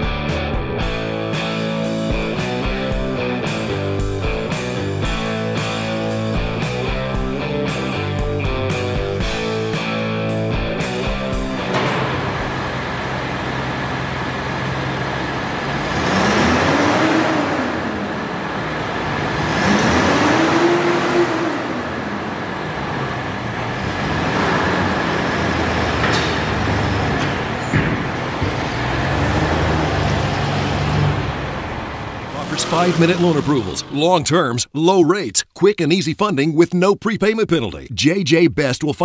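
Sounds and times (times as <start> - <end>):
car engine idling and revving: 0.0 - 34.0
car pulling away: 0.0 - 34.3.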